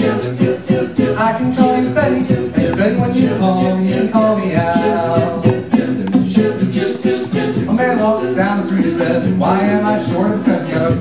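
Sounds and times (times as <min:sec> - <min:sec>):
a cappella group singing chords: 0:00.0 - 0:11.0
vocal percussion beats: 0:00.0 - 0:11.0.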